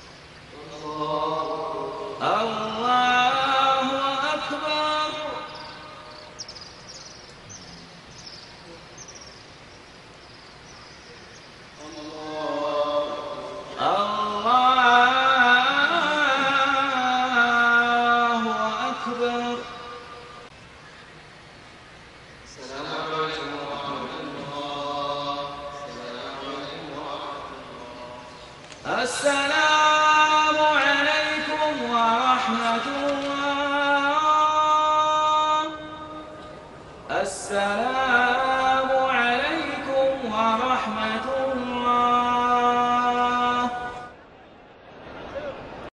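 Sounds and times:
faint steady hum: 0.0 - 45.9
man chanting a prayer: 0.5 - 6.4, 11.8 - 20.3, 22.5 - 44.1.

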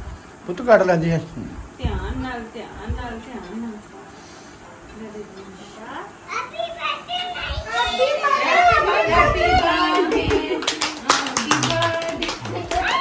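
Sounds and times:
voices talking over each other: 5.2 - 10.6
hand clapping: 9.5 - 13.0.

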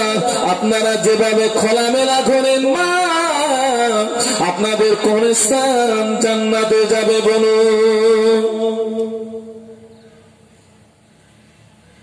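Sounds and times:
man chanting through loudspeakers: 0.0 - 10.3.

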